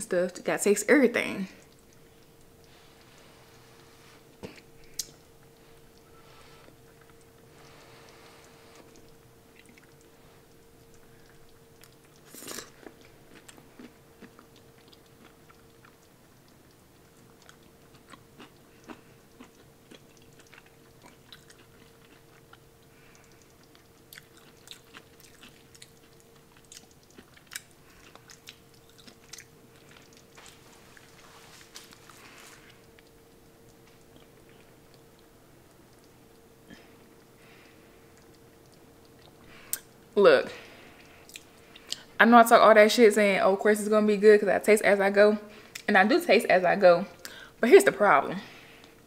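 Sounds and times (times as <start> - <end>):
faint steady hum: 0.0 - 49.0
person chewing: 1.6 - 42.1.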